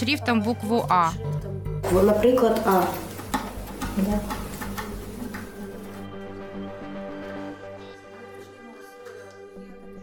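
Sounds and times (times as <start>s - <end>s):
background music sustained tones: 0.0s - 10.0s.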